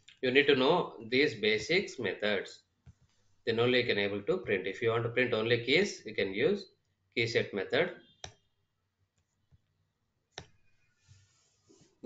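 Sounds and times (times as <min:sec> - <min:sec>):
computer mouse clicking: 0:10.3 - 0:10.6.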